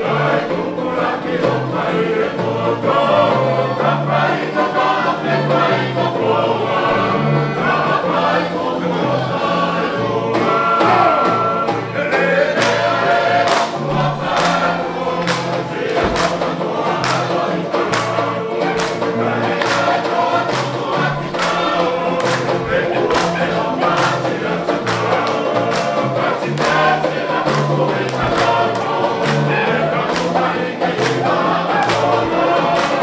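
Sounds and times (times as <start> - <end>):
men singing together: 0.0 - 33.0
strummed guitars banjo and ukuleles: 0.0 - 33.0.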